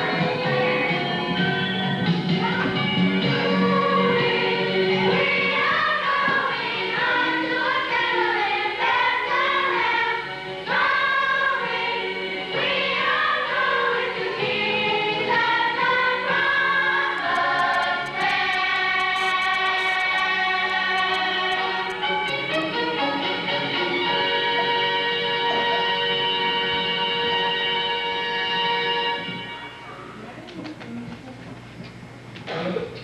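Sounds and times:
choir of girls singing: 2.4s - 23.8s.

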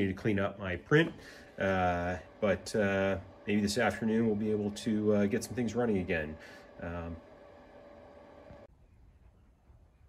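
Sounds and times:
stepper motor whine: 0.0s - 8.7s.

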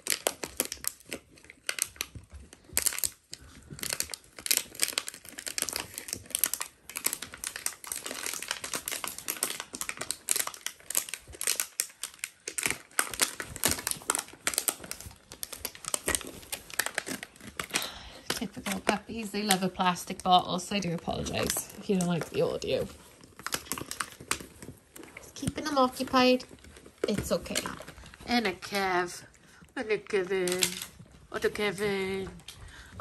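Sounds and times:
plastic bottle crinkling: 0.0s - 33.0s.

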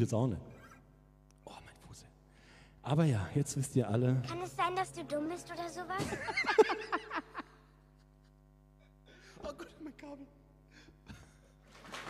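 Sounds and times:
man speaking: 0.0s - 0.8s, 2.8s - 4.4s
faint steady hum: 0.0s - 12.0s.

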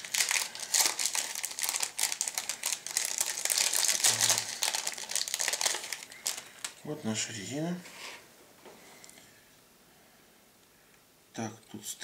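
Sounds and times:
plastic bag crinkling: 0.0s - 6.9s.

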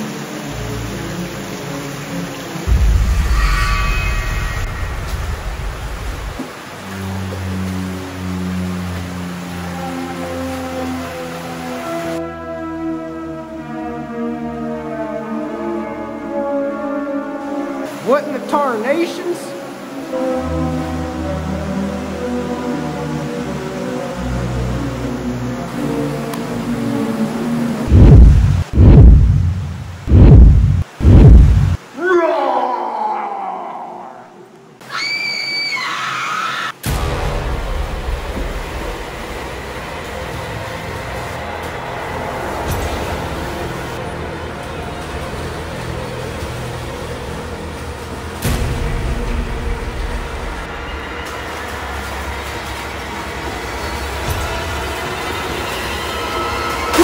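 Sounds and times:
steady rumbling noise: 2.6s - 6.8s, 27.8s - 31.8s
deep booming hits: 2.7s - 6.3s, 27.9s - 31.8s
high shriek: 3.0s - 6.0s.

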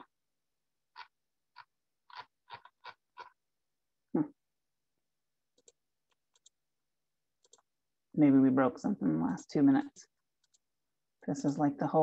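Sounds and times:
computer mouse clicks: 5.6s - 6.6s, 7.4s - 7.7s, 10.4s - 10.7s.

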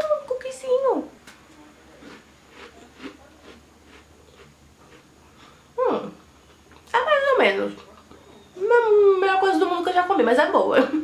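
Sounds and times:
cookie crunching: 1.2s - 5.6s.

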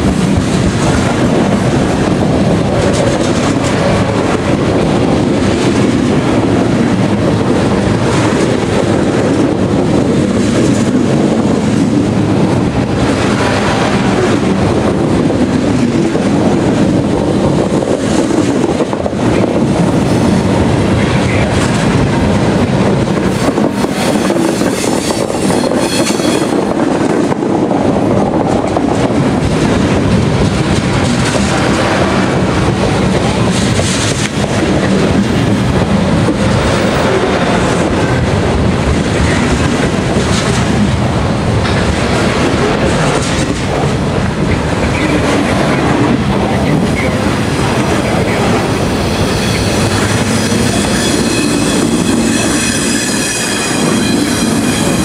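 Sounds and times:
freight train rolling rumble: 0.0s - 55.0s
wheel clatter over rail joints: 0.0s - 55.0s
high wheel squeal: 23.9s - 26.6s, 49.0s - 55.0s.

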